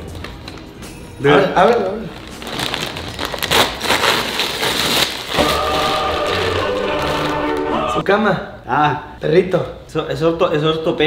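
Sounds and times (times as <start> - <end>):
wrapping paper crinkling and tearing: 1.6 - 7.8
held musical chord: 5.4 - 8.0.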